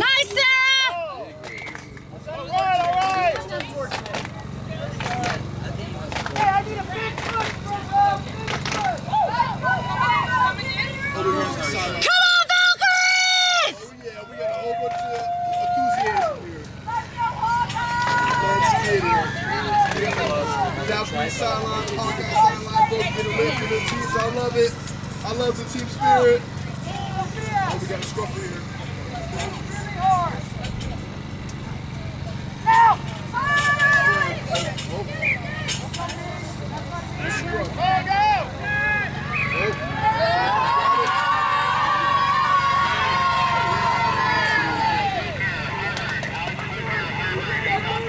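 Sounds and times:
people talking and calling out: 0.0 - 48.0
loud high-pitched shout: 12.0 - 13.9.

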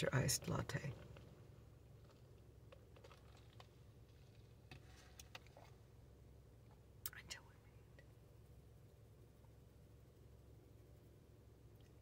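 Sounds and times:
steady low hum: 0.0 - 12.0
soft whisper: 7.0 - 8.0.

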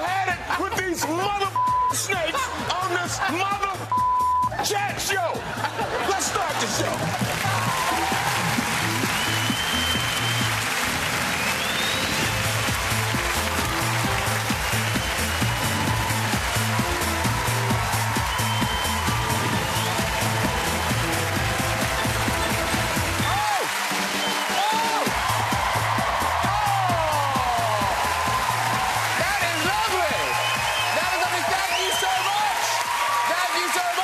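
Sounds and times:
audience applause and cheering: 0.0 - 34.0
upbeat tv theme music: 0.0 - 34.0.

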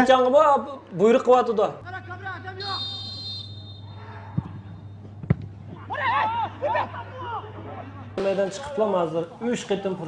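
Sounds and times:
football kicked with sharp thud: 5.2 - 5.6.

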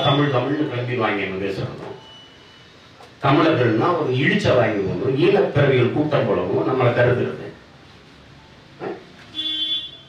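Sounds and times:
vehicle horn toot: 9.3 - 10.0.

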